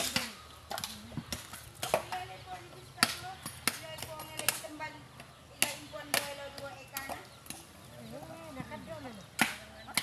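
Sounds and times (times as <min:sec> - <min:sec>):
blade chopping coconuts: 0:00.0 - 0:07.7, 0:09.3 - 0:10.0.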